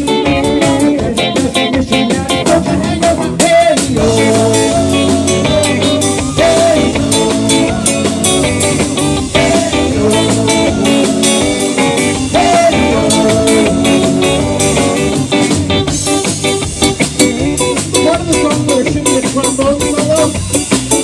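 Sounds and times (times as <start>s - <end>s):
electric guitars: 0.0s - 21.0s
live rock band playing: 0.0s - 21.0s
steady drum beat: 0.0s - 21.0s.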